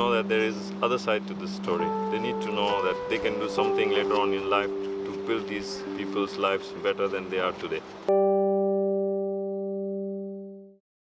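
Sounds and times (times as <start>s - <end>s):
low musical note ringing: 0.0s - 10.7s.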